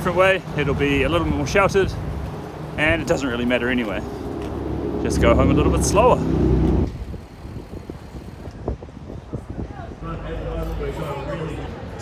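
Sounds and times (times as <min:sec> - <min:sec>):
wind buffeting microphone: 0:00.6 - 0:12.0.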